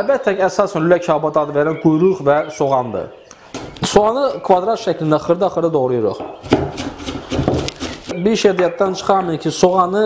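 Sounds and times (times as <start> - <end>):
knife chopping on wooden board: 6.2 - 8.2.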